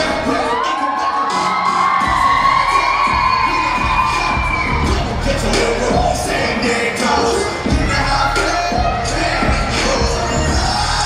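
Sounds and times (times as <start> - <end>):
audience screaming and cheering: 0.0 - 11.0
dance music beat: 0.0 - 11.0.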